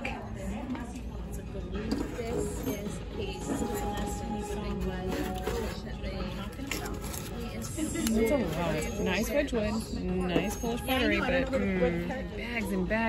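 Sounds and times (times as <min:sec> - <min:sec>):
background music: 0:02.0 - 0:09.0.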